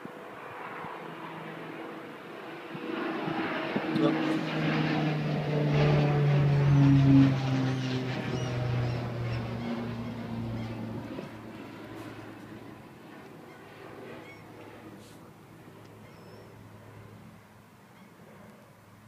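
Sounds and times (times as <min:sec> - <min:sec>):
passing aircraft engine drone: 0:00.0 - 0:19.0.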